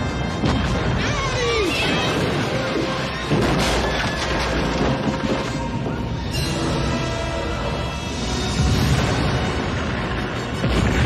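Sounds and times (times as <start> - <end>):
music: 0.0 - 11.0
falling debris crash: 0.4 - 6.0
deep rumble of explosions: 8.0 - 11.0.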